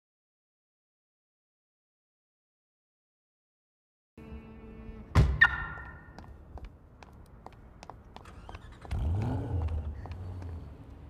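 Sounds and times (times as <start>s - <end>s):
car engine starting and idling: 8.0s - 11.0s.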